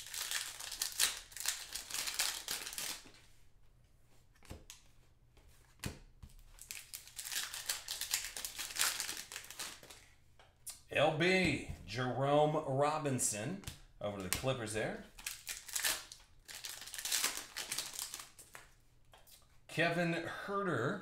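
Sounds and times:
plastic wrapper crinkling: 0.0s - 3.2s, 6.5s - 10.0s, 15.1s - 18.8s.

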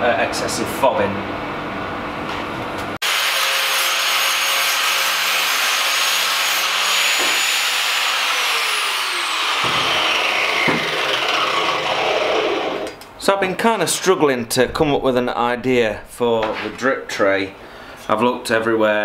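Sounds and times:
angle grinder cutting metal: 3.0s - 13.0s.

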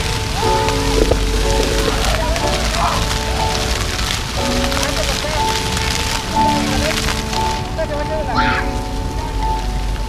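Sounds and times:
fountain jets splashing on paving: 0.0s - 10.0s
music with long held notes: 0.0s - 10.0s.

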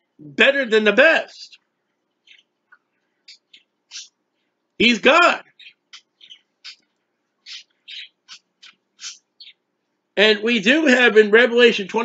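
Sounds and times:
person speaking: 0.2s - 1.6s, 3.3s - 4.1s, 4.8s - 5.6s, 10.2s - 12.0s
bird chirping: 1.3s - 9.9s.

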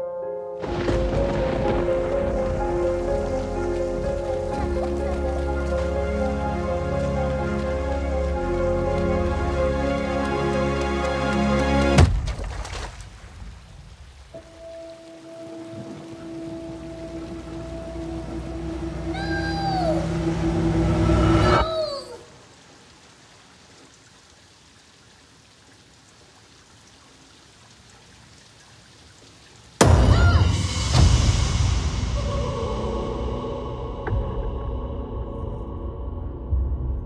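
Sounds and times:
rain falling: 0.6s - 33.3s
horror film drone: 16.2s - 21.7s
sudden loud hit: 29.8s - 33.4s.

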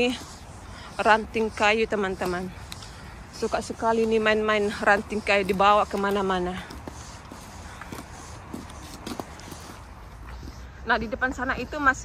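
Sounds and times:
footsteps on paved path: 0.0s - 12.0s.

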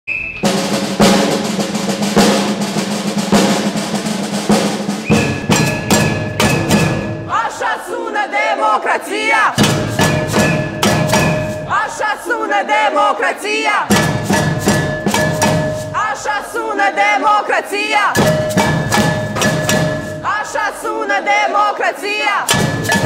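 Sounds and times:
snare drum rolls: 0.4s - 7.4s, 9.6s - 11.8s, 13.9s - 16.0s, 18.2s - 20.3s, 22.5s - 23.0s
metal pot beaten as drum: 5.0s - 7.3s, 9.6s - 11.8s, 13.9s - 16.0s, 18.2s - 20.3s, 22.5s - 23.0s
plastic jug beaten as drum: 5.0s - 7.3s, 9.6s - 11.7s, 13.9s - 16.0s, 18.2s - 20.2s, 22.5s - 23.0s.

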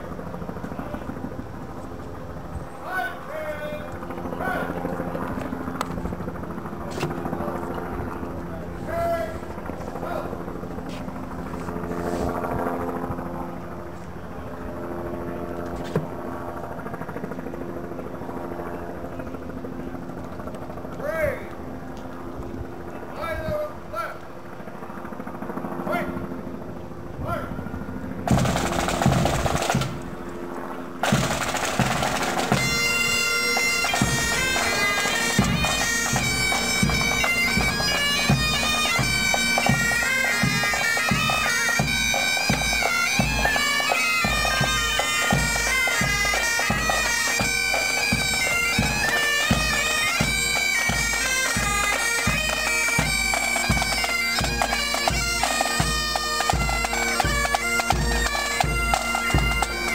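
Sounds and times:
bagpipes playing march melody: 28.0s - 59.9s
bagpipe drones: 28.2s - 59.9s
loud drumming: 31.0s - 32.8s.

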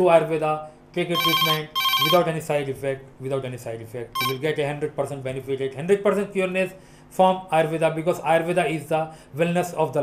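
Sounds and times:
man talking: 0.0s - 10.0s
telephone ringing: 1.2s - 2.3s, 4.2s - 4.5s.

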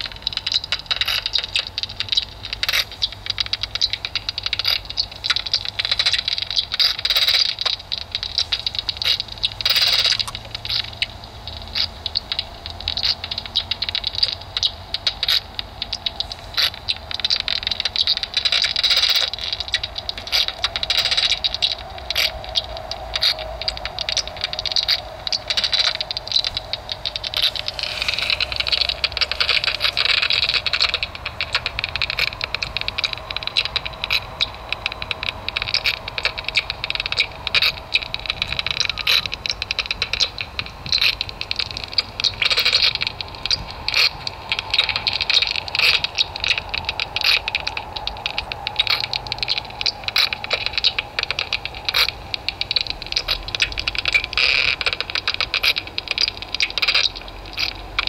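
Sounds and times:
bat detector dry clicks: 0.0s - 58.0s
steady hiss: 0.0s - 58.0s.

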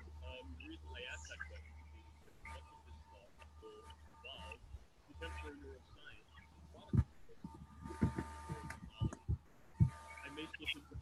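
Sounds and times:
faint garbled lecture voice: 0.0s - 9.4s, 10.2s - 11.0s
low hum: 0.0s - 11.0s.

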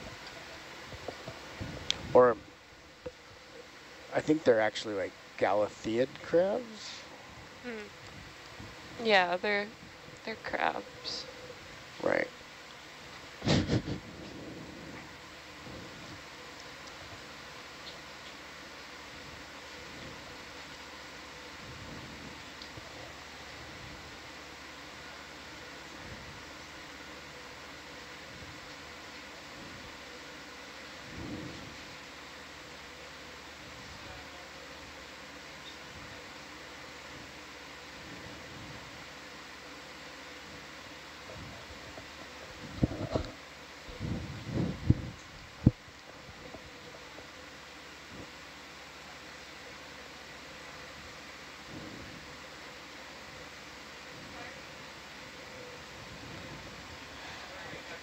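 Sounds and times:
faint steady tones: 0.0s - 13.4s, 14.3s - 58.0s
hiss and hum of audio feed: 0.0s - 58.0s.

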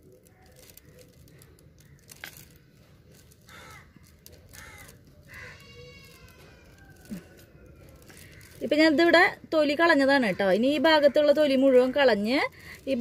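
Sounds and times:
crows cawing faintly: 0.2s - 9.2s, 10.2s - 12.8s.

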